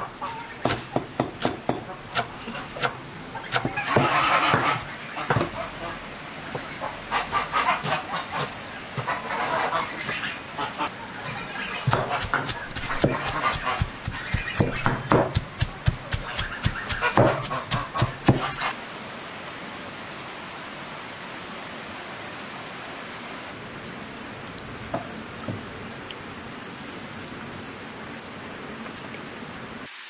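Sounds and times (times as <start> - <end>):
domestic fowl calling: 0.0 - 0.8, 1.9 - 14.8, 16.1 - 18.8
knife chopping on wooden board: 0.6 - 5.6, 11.9 - 18.6.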